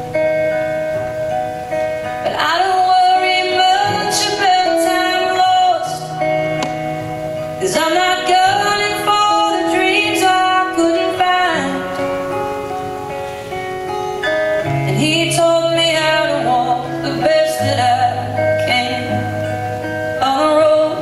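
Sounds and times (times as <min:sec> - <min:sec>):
acoustic guitars playing: 0:00.0 - 0:21.0
women singing: 0:02.2 - 0:06.1, 0:07.6 - 0:12.0, 0:14.9 - 0:19.4.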